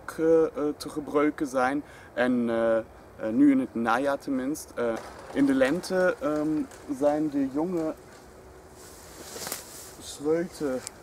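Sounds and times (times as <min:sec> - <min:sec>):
rustling among vines: 0:04.8 - 0:11.0.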